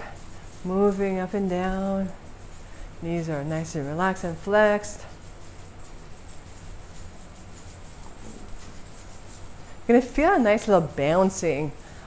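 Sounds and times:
metal coins jingling: 0.1s - 12.0s.

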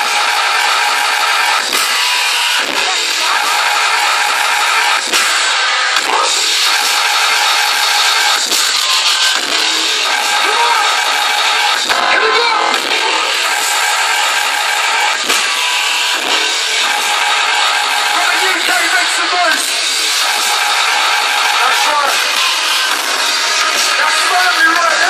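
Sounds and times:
electronic dance music: 0.0s - 25.0s.

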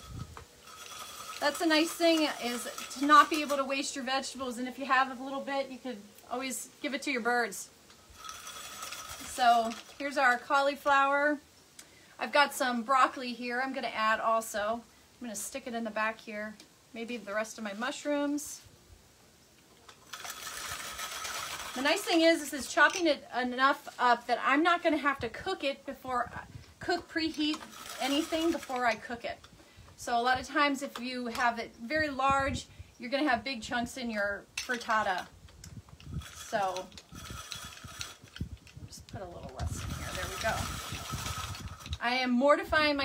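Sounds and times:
hand-cranked food slicer shredding: 20.1s - 22.1s, 27.3s - 28.8s, 36.2s - 38.4s, 39.6s - 42.0s.

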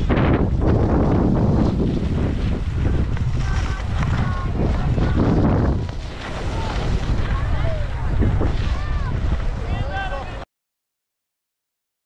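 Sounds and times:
skis scraping on snow: 0.0s - 10.4s
wind buffeting microphone: 0.0s - 10.4s.

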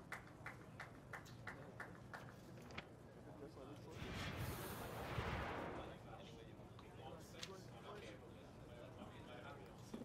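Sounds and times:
noisy whoosh with low rumble: 3.9s - 6.3s.

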